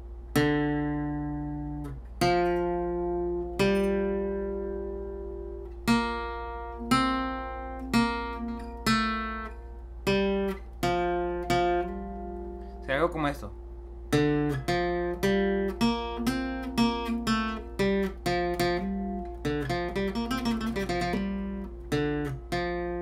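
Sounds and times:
acoustic guitar picked notes: 0:00.0 - 0:23.0.

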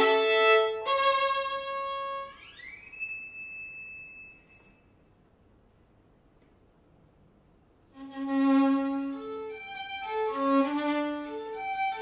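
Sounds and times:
bowed violin notes: 0:00.0 - 0:04.8, 0:07.9 - 0:12.0.

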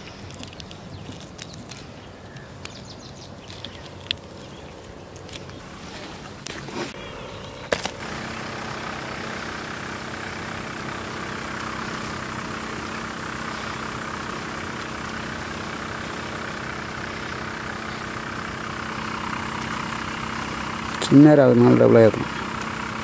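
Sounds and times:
motor humming: 0:02.6 - 0:23.0.

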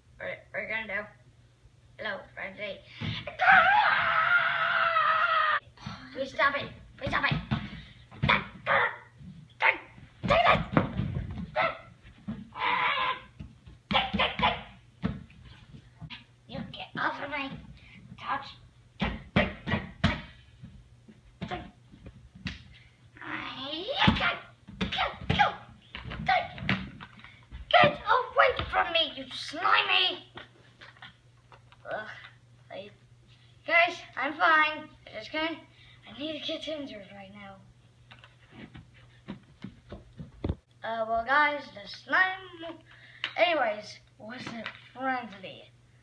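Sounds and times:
boy shouting and grunting: 0:02.1 - 0:10.9, 0:12.5 - 0:14.8, 0:18.2 - 0:20.3, 0:21.4 - 0:21.8, 0:23.2 - 0:26.8, 0:27.7 - 0:30.3, 0:31.8 - 0:32.9, 0:40.8 - 0:42.8
child screaming: 0:03.3 - 0:05.6, 0:12.5 - 0:13.3.

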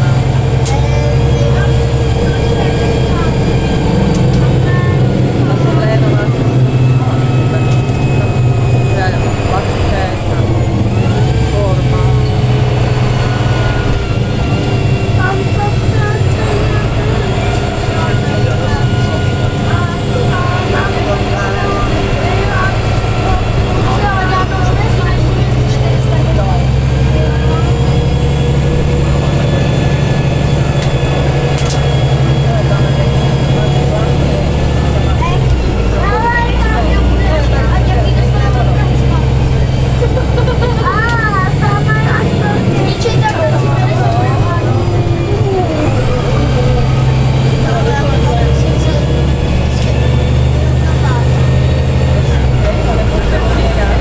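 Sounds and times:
bus engine drone: 0:00.0 - 0:54.0.

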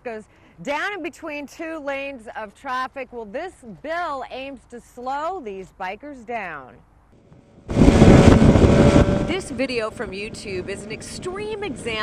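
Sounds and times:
wind and road noise: 0:07.1 - 0:12.0
vehicle engine: 0:07.3 - 0:12.0.

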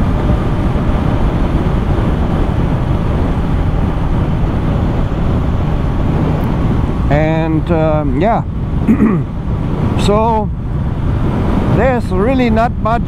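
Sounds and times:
road noise: 0:00.0 - 0:13.0
wind rush: 0:00.0 - 0:13.0.

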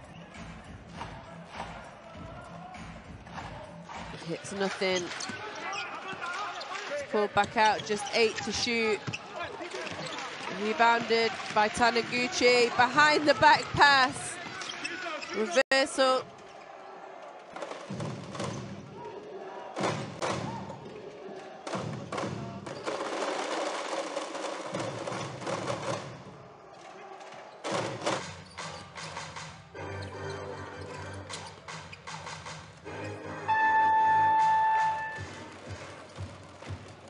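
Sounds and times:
voices over basketball court: 0:00.0 - 0:23.5, 0:25.8 - 0:29.8
arena music: 0:29.6 - 0:37.0.

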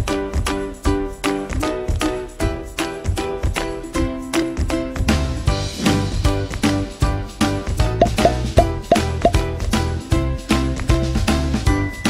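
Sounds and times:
background music with steady beat: 0:07.8 - 0:09.8
cartoon plop sound effects: 0:08.0 - 0:09.4.

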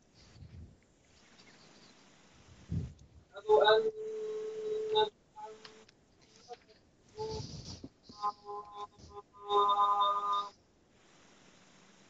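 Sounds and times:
steady electronic tone: 0:07.2 - 0:10.6.

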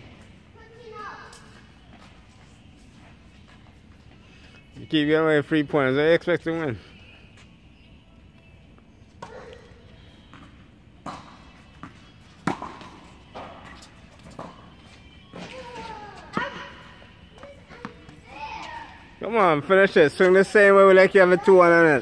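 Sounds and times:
tennis balls struck and bouncing: 0:09.1 - 0:18.8.

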